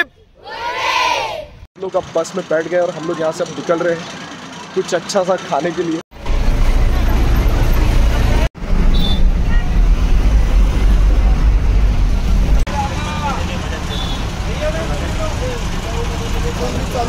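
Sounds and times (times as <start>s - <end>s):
road noise: 0.0s - 17.0s
street noise: 0.0s - 17.0s
bus engine rumble: 1.8s - 17.0s.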